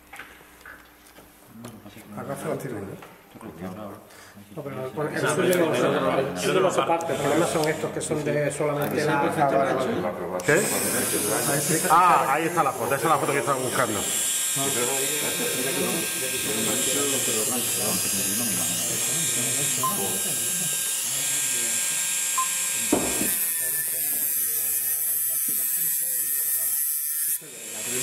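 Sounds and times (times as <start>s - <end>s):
rotary tool grinding metal: 7.0s - 8.0s, 10.4s - 28.0s.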